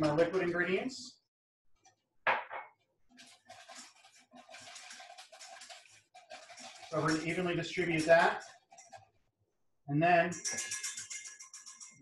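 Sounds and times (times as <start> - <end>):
whisk scraping in bowl: 3.1 - 9.2, 10.3 - 12.0.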